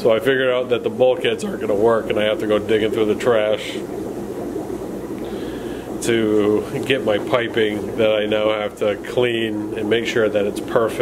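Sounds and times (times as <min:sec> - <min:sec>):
steady low background noise: 0:00.0 - 0:11.0.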